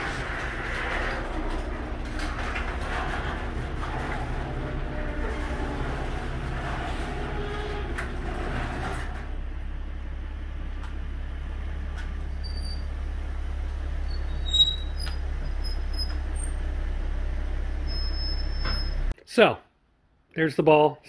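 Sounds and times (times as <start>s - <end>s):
car engine idling: 0.0s - 18.3s
door rattling in tracks: 0.0s - 19.1s
garage door opener: 0.0s - 19.1s.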